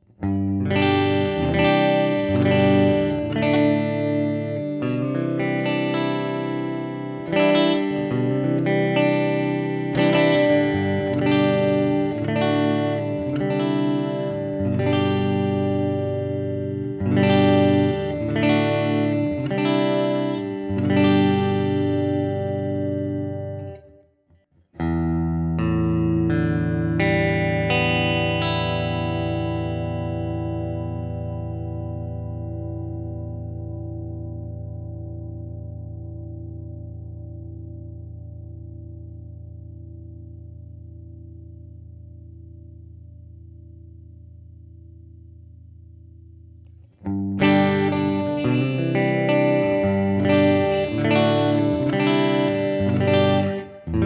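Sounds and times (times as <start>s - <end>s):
electric guitar strummed chords: 0.0s - 24.1s, 24.8s - 54.0s.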